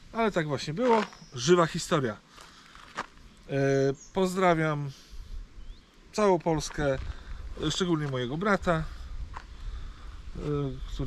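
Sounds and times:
man speaking: 0.0s - 2.2s, 3.5s - 5.0s, 6.1s - 9.0s, 10.4s - 11.0s.

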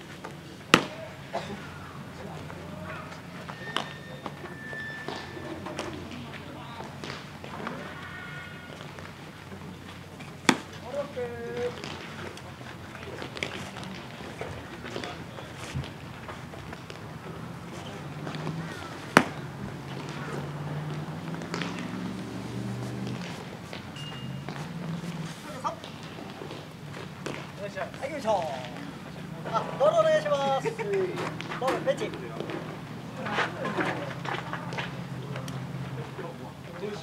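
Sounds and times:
baseball smacking into gloves: 0.7s - 1.0s, 10.4s - 10.8s, 18.3s - 19.4s
distant players shouting: 0.7s - 9.8s, 16.7s - 26.6s, 27.2s - 35.8s.

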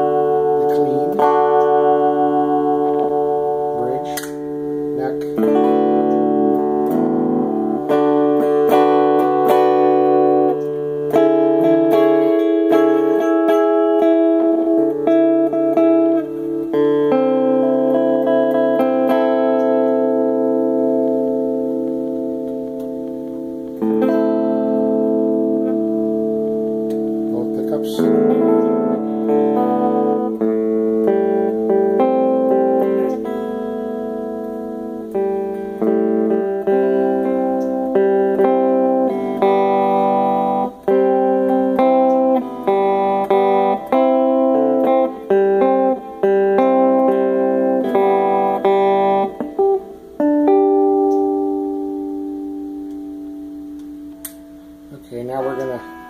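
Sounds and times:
electric guitar chords ringing: 0.0s - 56.0s.

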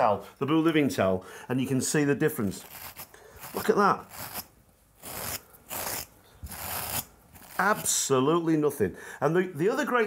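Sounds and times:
wire brush scrubbing towel: 2.5s - 7.9s.

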